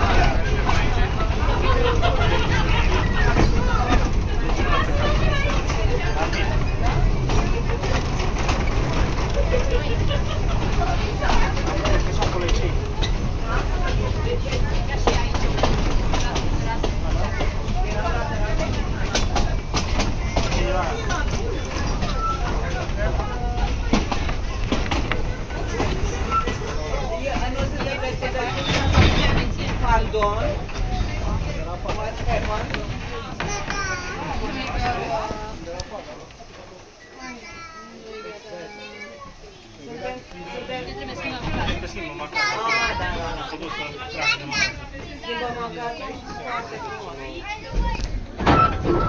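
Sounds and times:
passenger chatter: 0:00.0 - 0:49.0
train carriage rumble: 0:00.0 - 0:49.0.

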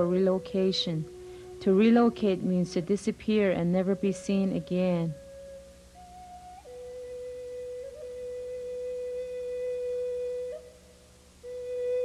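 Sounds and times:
flute holding long note: 0:00.0 - 0:02.8, 0:05.1 - 0:12.0.

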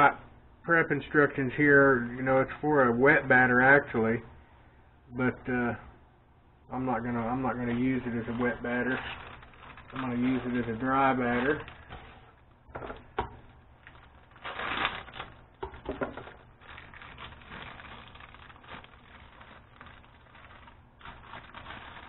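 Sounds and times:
plastic bag crinkling: 0:07.4 - 0:22.0.

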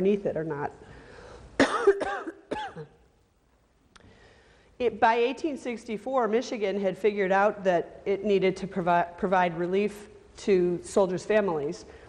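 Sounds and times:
woman coughing: 0:01.6 - 0:03.0.

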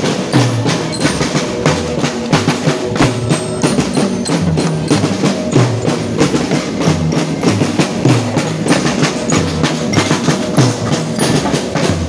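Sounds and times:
bass drum: 0:00.0 - 0:12.0
snare drums: 0:00.0 - 0:12.0
tenor drums: 0:00.0 - 0:12.0.

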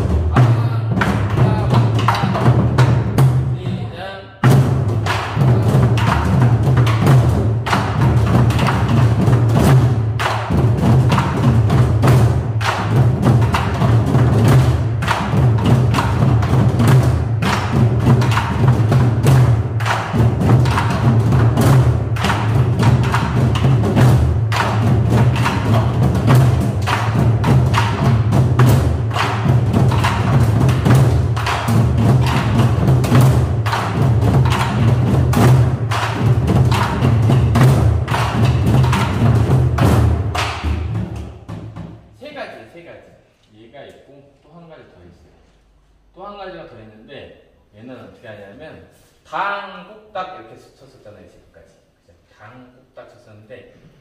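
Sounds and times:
group drumming with sticks: 0:00.0 - 0:42.2.

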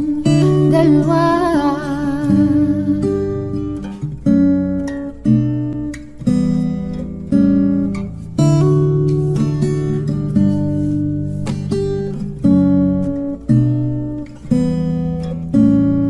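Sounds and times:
person singing with vibrato: 0:00.0 - 0:03.6
acoustic guitar chords: 0:00.0 - 0:16.0.

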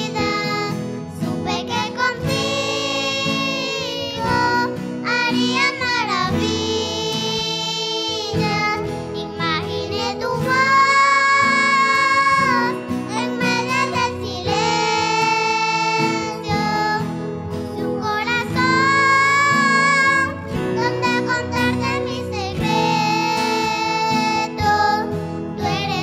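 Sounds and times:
girls singing into microphones: 0:00.0 - 0:17.2, 0:17.8 - 0:26.0
instrumental accompaniment: 0:00.0 - 0:26.0.

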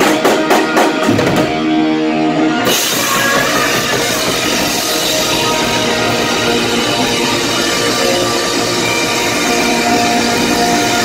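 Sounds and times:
distorted electric guitar sustained notes: 0:00.0 - 0:11.0
heavy metal band playing live: 0:00.0 - 0:11.0.

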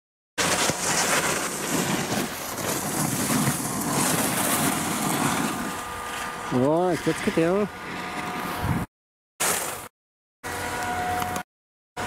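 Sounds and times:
ski edges scraping packed snow: 0:00.4 - 0:08.9
wind on microphone: 0:01.8 - 0:08.9.

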